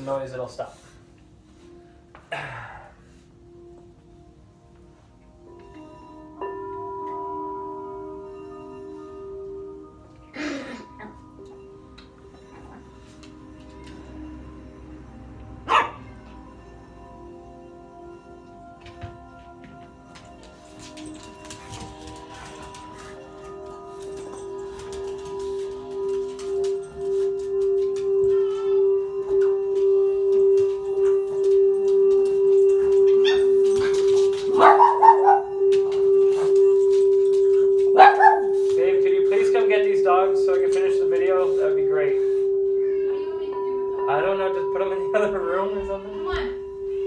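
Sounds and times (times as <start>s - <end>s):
crystal singing bowl ringing: 3.3s - 47.0s
dog barking: 15.7s - 16.1s, 34.6s - 35.6s, 38.0s - 38.6s
dog howling: 27.6s - 38.6s.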